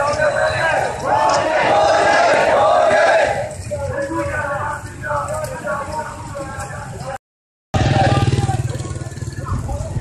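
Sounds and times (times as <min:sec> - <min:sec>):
crowd voices: 0:00.0 - 0:07.2, 0:07.8 - 0:10.0
motorcycle engine running: 0:07.8 - 0:10.0.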